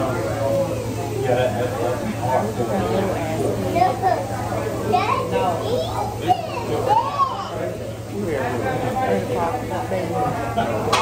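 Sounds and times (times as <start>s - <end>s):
background voices in restaurant: 0.0s - 11.0s.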